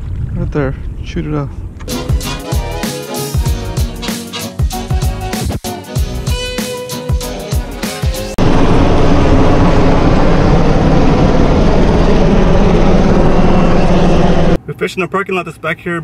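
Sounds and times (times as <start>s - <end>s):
background music: 1.9s - 8.4s
helicopters flying: 7.4s - 14.6s.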